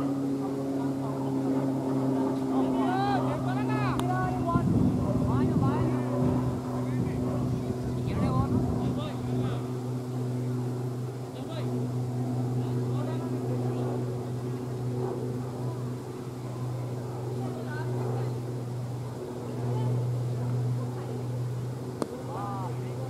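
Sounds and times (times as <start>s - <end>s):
low motor hum: 0.0s - 23.0s.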